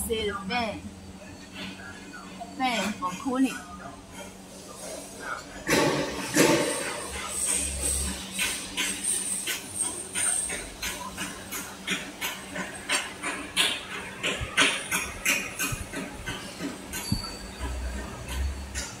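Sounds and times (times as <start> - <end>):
machine clicking and clanking: 5.6 - 19.0.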